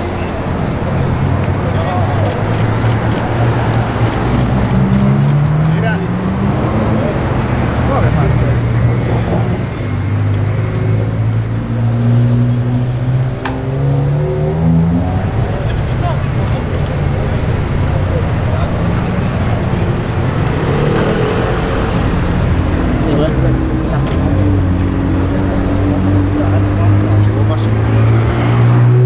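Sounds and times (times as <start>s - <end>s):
sports car engine accelerating: 0.0s - 29.0s.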